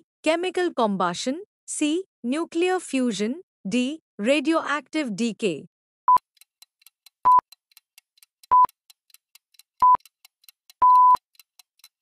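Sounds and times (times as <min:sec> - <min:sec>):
fast clock ticking: 0:06.1 - 0:12.0
short electronic beeps: 0:07.2 - 0:07.4, 0:08.5 - 0:08.8, 0:09.8 - 0:10.0, 0:10.8 - 0:11.2.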